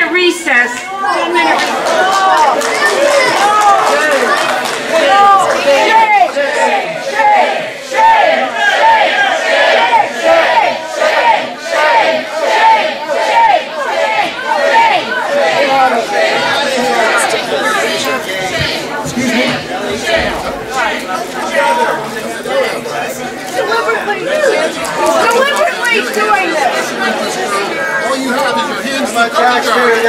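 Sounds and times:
hubbub of overlapping voices: 0.0 - 30.0.

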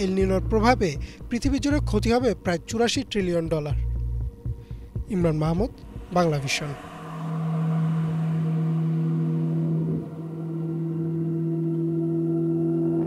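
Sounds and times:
low synthesizer drone: 0.0 - 13.0
higher held synthesizer tone: 5.1 - 13.0.

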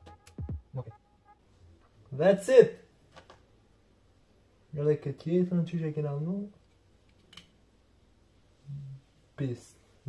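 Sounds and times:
man speaking: 0.6 - 1.0, 2.1 - 2.9, 4.7 - 6.6, 8.6 - 10.0.

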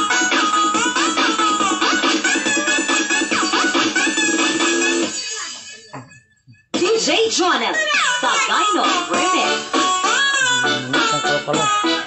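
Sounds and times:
upbeat dance music: 0.0 - 6.1, 6.8 - 12.0.

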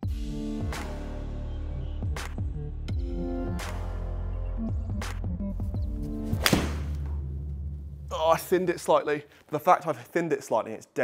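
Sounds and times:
golf club striking ball: 6.4 - 7.1.

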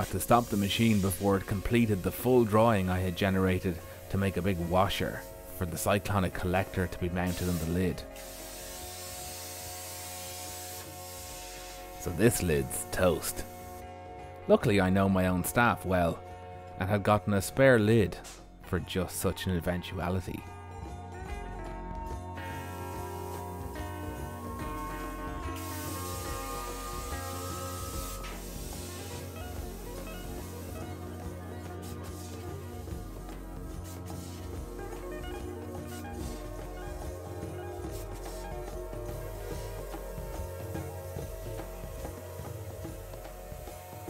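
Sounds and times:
plasma cutter hissing: 0.0 - 6.6, 7.2 - 13.8, 25.5 - 37.1, 37.8 - 44.0
background music: 0.0 - 44.0.

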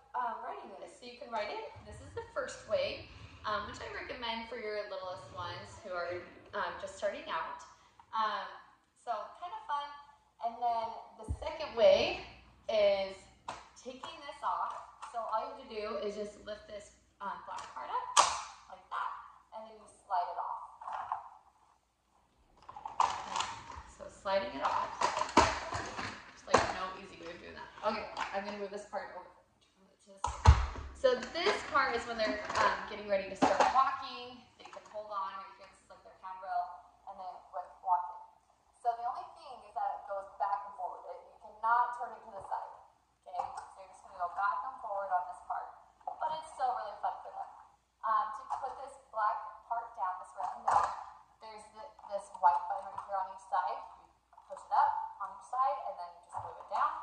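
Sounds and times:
woman talking: 0.0 - 21.2, 23.8 - 57.0.

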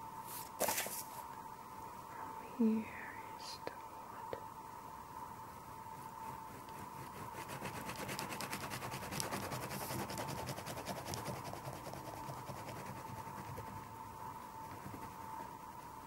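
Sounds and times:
pastel rubbing on paper: 5.9 - 13.9, 14.5 - 15.6.

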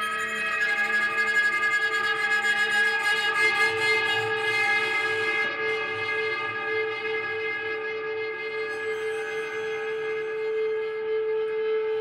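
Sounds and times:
bowed guitar drone: 0.0 - 12.0.

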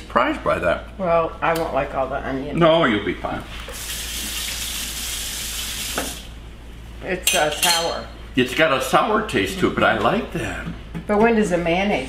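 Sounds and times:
tap running into sink: 5.8 - 6.3.

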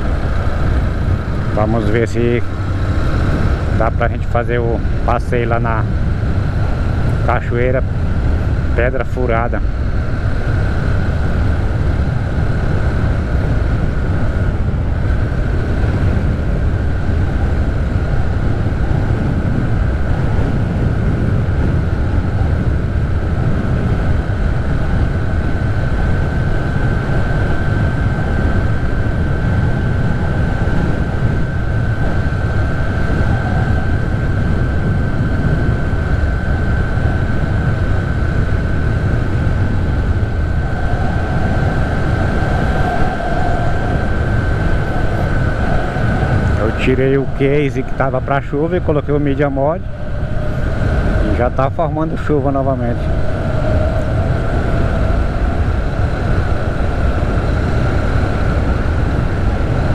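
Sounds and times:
thin steady whine: 0.0 - 59.9
wind: 0.0 - 59.9.

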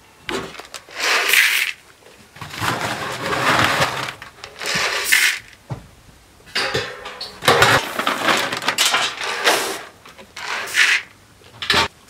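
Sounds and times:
feed pellets poured into pan: 0.8 - 1.8, 2.9 - 5.5, 10.4 - 11.1.

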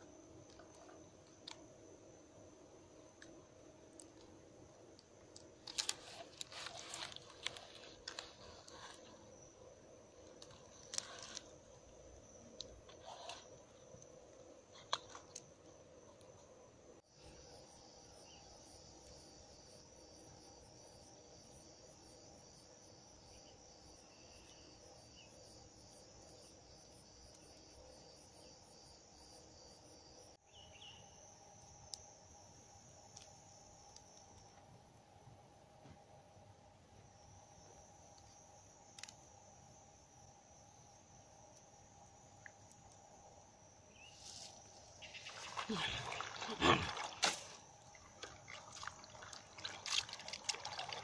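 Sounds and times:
crickets chirping: 0.0 - 51.0.

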